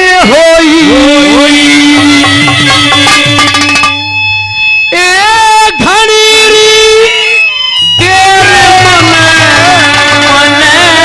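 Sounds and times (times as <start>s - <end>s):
man singing long high note: 0.0s - 3.8s, 4.9s - 11.0s.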